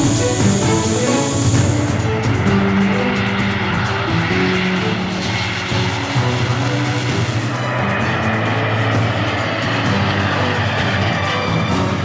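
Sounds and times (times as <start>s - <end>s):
background music with held notes: 0.0s - 12.0s
jet aircraft flying past: 0.0s - 12.0s.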